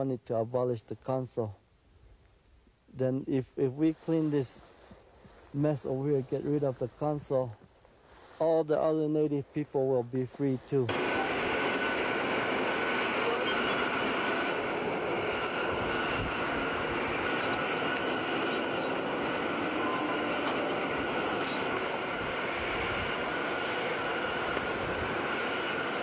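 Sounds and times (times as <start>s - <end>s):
faint high whine: 0.0s - 26.0s.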